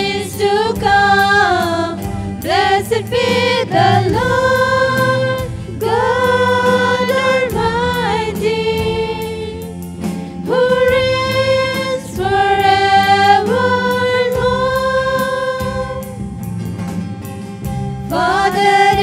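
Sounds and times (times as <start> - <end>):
women singing worship song: 0.0 - 16.2, 18.0 - 19.0
acoustic guitar: 0.0 - 19.0
electric bass: 0.0 - 19.0
light steady beat: 0.8 - 11.4.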